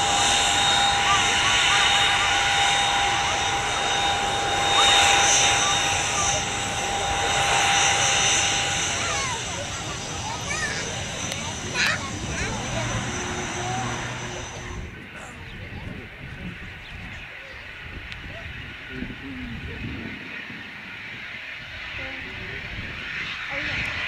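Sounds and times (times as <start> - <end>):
distant jet noise: 0.0 - 24.0
jet engine whine: 0.0 - 24.0.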